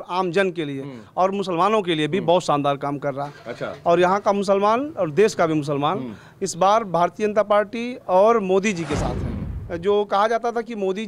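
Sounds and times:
man speaking: 0.0s - 2.9s.

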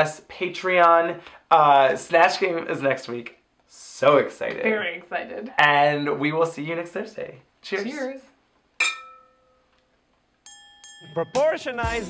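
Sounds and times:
wine glasses clinking: 8.8s - 9.6s, 10.5s - 11.5s
bright bell-like chime: 10.4s - 11.9s.

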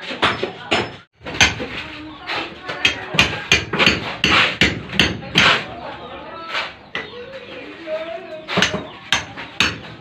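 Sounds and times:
hammer and chisel on concrete: 0.0s - 5.8s, 6.4s - 7.2s, 8.3s - 10.0s.

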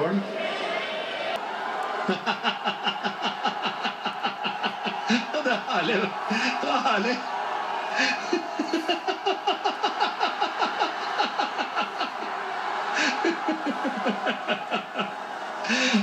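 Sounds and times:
man laughing: 2.0s - 6.8s, 8.0s - 16.0s.

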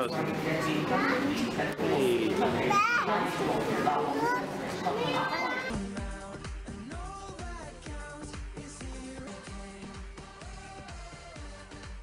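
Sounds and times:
children talking and exclaiming: 0.3s - 5.8s
music: 5.0s - 12.0s.

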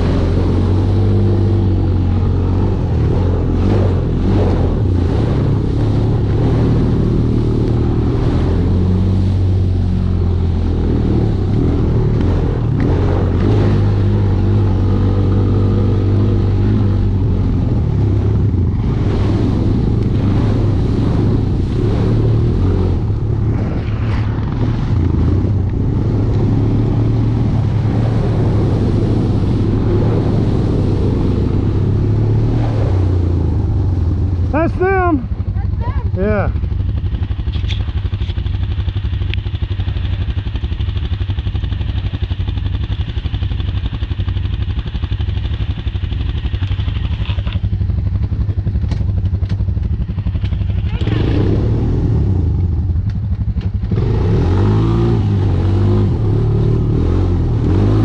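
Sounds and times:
atv engine running: 0.0s - 58.0s.

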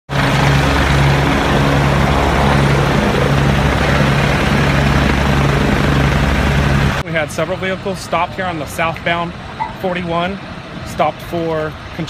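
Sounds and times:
helicopter hovering: 0.1s - 12.0s.

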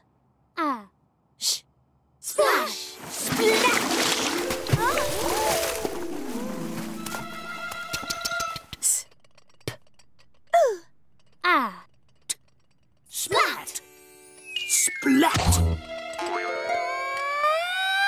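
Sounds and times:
magical musical flourish: 4.0s - 7.4s.

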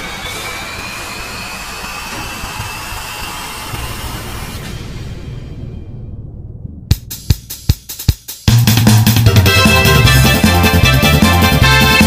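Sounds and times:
rushing jet-like noise: 0.0s - 5.9s
thin whistling tone rising: 0.0s - 6.1s.

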